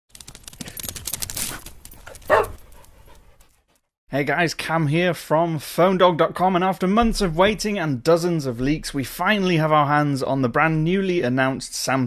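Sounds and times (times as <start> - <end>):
dog panting: 1.5 - 3.9
dog barking: 2.2 - 2.6.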